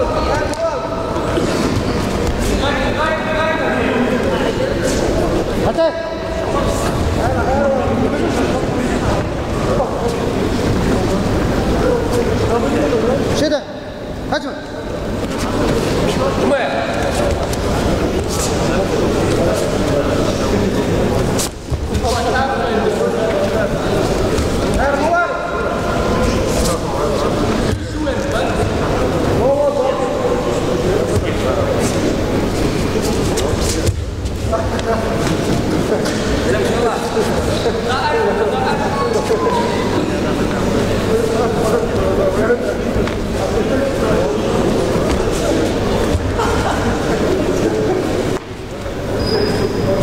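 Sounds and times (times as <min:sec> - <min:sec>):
people talking and calling out: 0:00.0 - 0:50.0.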